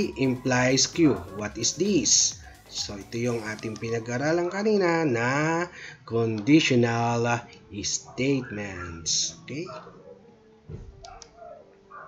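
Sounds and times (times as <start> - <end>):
soft low thump: 10.7 - 11.1
computer mouse clicks: 11.0 - 11.4.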